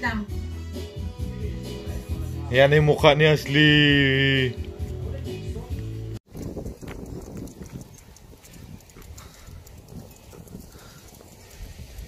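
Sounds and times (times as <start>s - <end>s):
music: 0.0s - 6.2s
footsteps on pavement: 4.6s - 11.8s
wind rumble on microphone: 6.3s - 12.0s.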